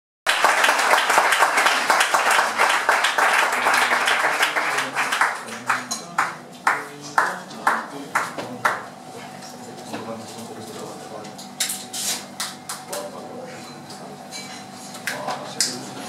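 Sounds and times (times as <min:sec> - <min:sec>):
audience applauding: 0:00.3 - 0:08.8.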